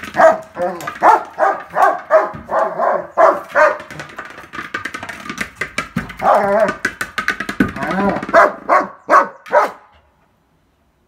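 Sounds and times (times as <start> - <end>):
dog barking rapidly: 0.0 - 4.0, 8.2 - 9.9.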